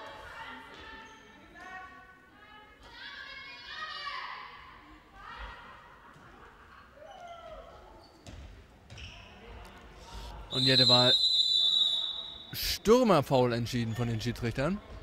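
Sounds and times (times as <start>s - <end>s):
referee's whistle blowing: 10.5s - 12.8s.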